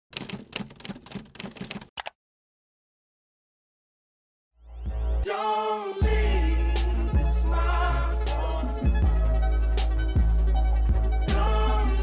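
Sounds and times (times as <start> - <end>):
typewriter keys clacking: 0.0 - 2.1.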